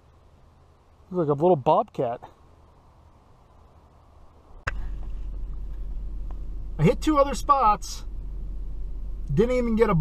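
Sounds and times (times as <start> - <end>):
faint outdoor background: 0.0 - 10.0
truck engine idling: 4.6 - 10.0.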